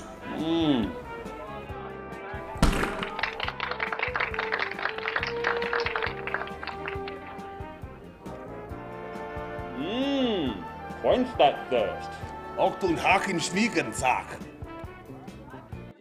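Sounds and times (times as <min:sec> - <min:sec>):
background music: 0:00.0 - 0:16.0
sharp thunk: 0:02.6 - 0:03.0.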